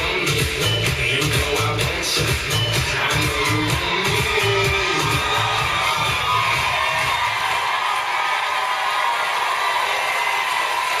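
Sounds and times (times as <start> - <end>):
pop dance music with heavy beat: 0.0 - 8.1
studio audience cheering and applauding: 2.3 - 11.0.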